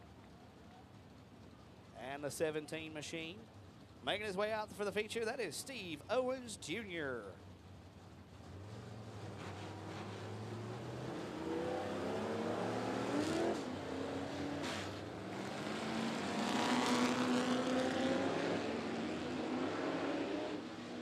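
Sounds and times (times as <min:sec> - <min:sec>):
race car engines revving past: 0:08.4 - 0:21.0.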